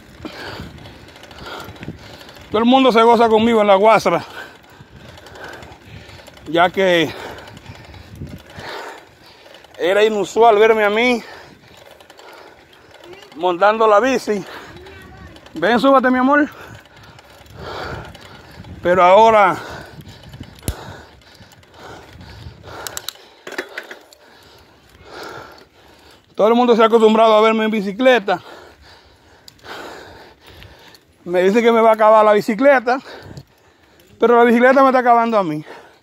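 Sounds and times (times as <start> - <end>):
bicycle road noise: 0.0 - 36.0
man speaking: 9.8 - 11.3, 13.2 - 14.6, 15.6 - 16.6
sharp clicks: 20.2 - 21.7, 22.8 - 24.3
bicycle knocks: 23.4 - 24.1.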